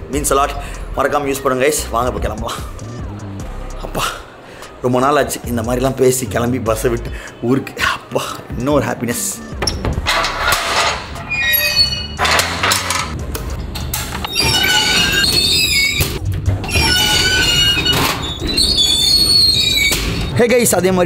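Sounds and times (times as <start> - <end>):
background music: 0.0 - 21.0
lift gate squealing: 9.5 - 13.2, 14.1 - 20.4.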